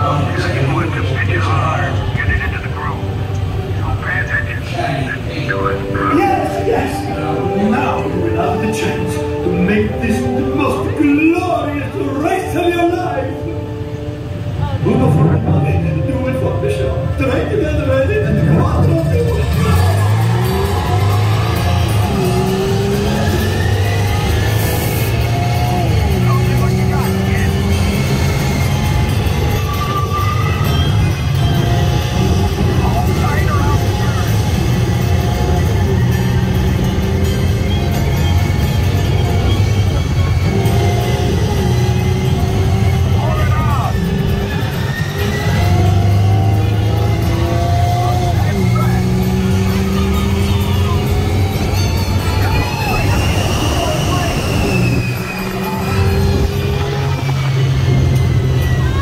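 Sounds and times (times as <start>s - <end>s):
car engine sounds: 0.0s - 59.0s
music: 0.0s - 59.0s.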